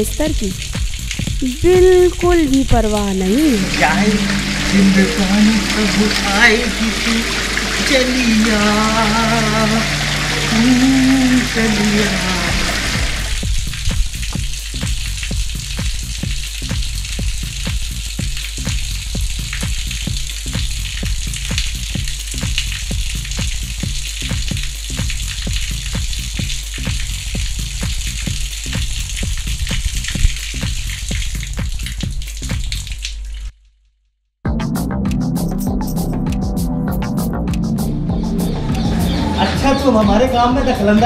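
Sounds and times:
hose water splashing on concrete: 0.0 - 33.6.

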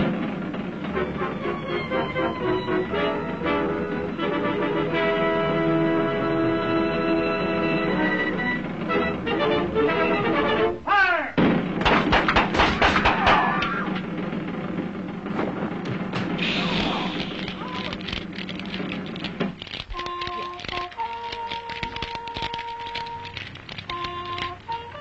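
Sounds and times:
orchestral cartoon music: 0.0 - 10.9, 20.0 - 25.0
rapid cracks and crashes: 11.4 - 25.0
rushing noise: 11.6 - 20.7
falling slide: 12.0 - 25.0.

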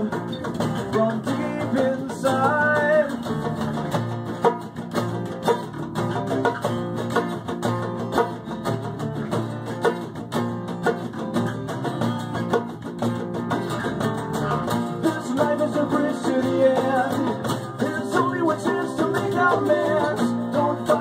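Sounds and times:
acoustic guitars strumming: 0.0 - 21.0
djembe hand drumming: 0.0 - 21.0
electric bass: 0.0 - 21.0.

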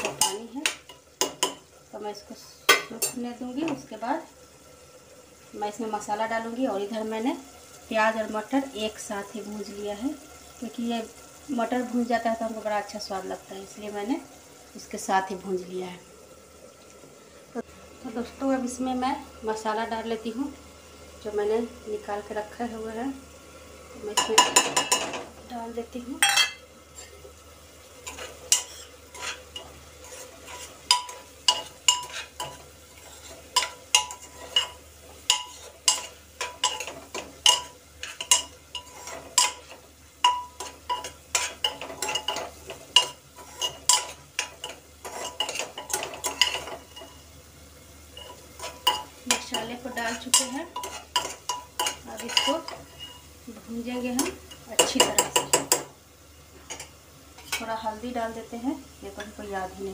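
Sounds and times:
faint frying sizzle: 0.0 - 59.9
spoon scraping metal pot: 28.0 - 47.2, 48.2 - 53.3.

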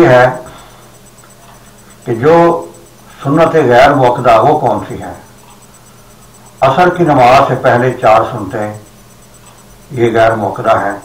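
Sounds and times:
man speaking: 0.0 - 0.6, 2.0 - 5.2, 6.6 - 8.9, 9.9 - 11.0
thin steady high whine: 0.0 - 11.0.

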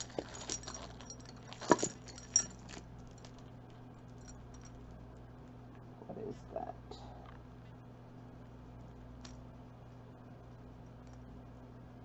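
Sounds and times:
jewelry clinking: 0.0 - 3.5.

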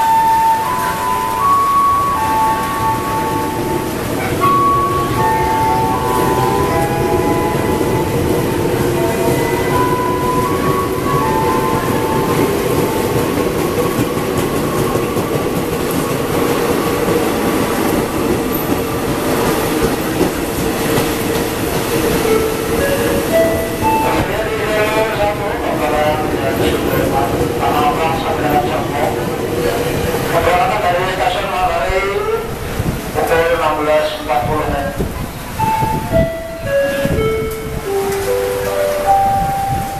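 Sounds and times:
train wheels rumbling on rails: 0.0 - 39.9.

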